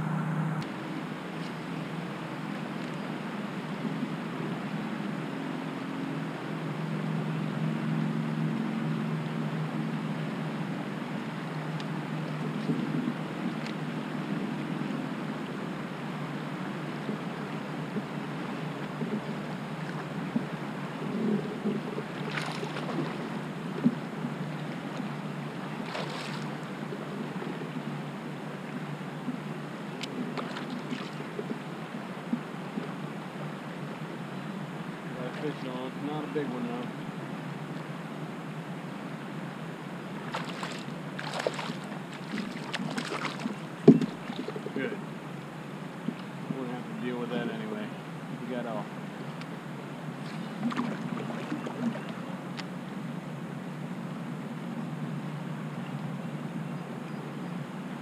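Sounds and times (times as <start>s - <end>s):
low hum: 0.0s - 58.0s
water rushing along kayak hull: 0.0s - 58.0s
wind on microphone: 6.9s - 33.6s, 40.0s - 44.8s.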